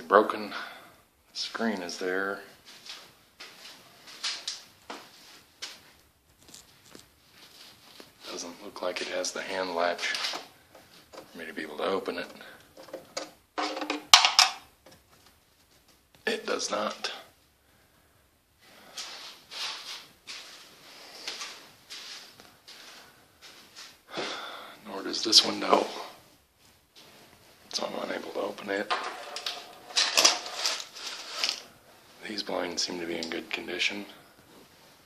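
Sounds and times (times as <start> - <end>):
metal window frame rattling: 28.9 - 31.4.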